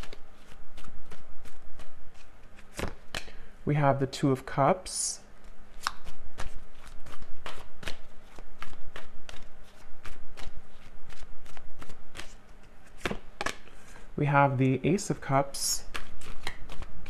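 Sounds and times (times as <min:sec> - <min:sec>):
cards being shuffled: 0:00.0 - 0:03.4, 0:05.4 - 0:14.1, 0:15.8 - 0:17.0.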